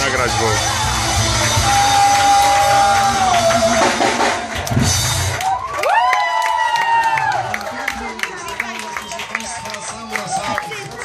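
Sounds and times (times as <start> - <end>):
live rock band playing: 0.0 - 5.4
crowded room: 0.0 - 11.0.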